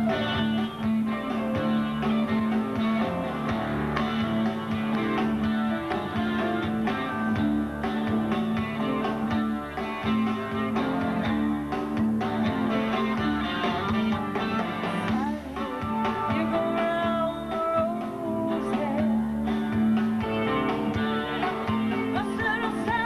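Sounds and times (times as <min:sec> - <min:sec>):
bent guitar notes: 0:00.0 - 0:23.0
live rock band playing: 0:00.0 - 0:23.0.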